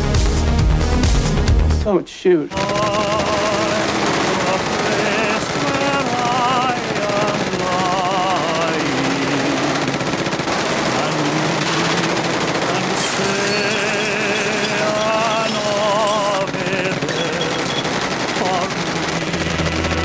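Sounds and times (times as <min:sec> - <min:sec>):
man singing slow ballad: 0:02.5 - 0:09.8, 0:10.9 - 0:17.8, 0:18.4 - 0:18.8
submachine gun fire: 0:02.5 - 0:20.0.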